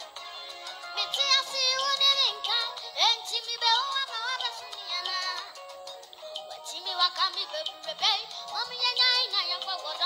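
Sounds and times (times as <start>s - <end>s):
music: 0.0s - 10.0s
child singing into a microphone: 1.0s - 5.5s, 6.6s - 10.0s.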